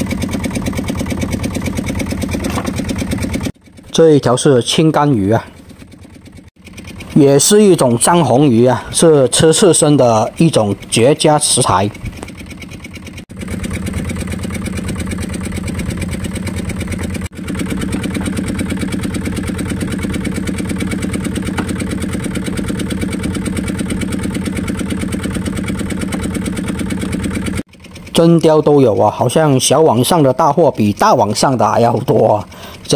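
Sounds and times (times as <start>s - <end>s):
boat engine running: 0.0s - 32.9s.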